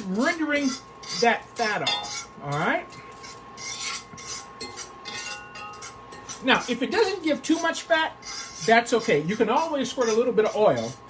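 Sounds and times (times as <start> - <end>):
faint steady burner tone: 0.0 - 11.0
fat sizzling in skillet: 0.0 - 11.0
fork scraping on iron: 0.0 - 11.0.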